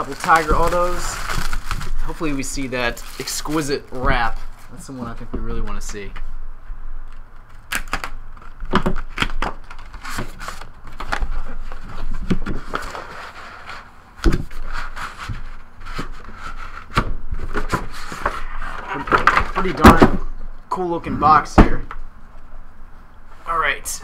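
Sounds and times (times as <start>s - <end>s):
cardboard rustling and scraping: 0.0s - 5.9s, 8.4s - 20.3s.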